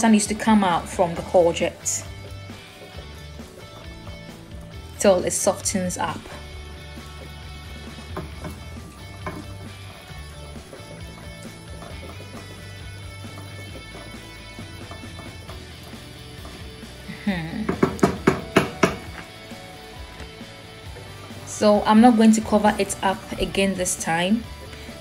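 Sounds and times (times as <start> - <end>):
spatula stirring in frying pan: 0.0 - 17.1, 17.7 - 25.0
background music: 0.0 - 25.0.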